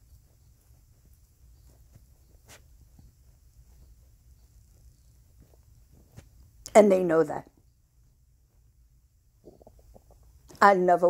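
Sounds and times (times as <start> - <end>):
faint low room rumble: 0.0 - 11.0.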